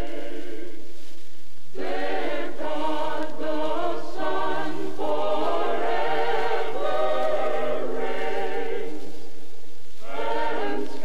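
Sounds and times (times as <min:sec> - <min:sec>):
choir singing sustained chords: 0:00.0 - 0:01.0, 0:01.7 - 0:11.0.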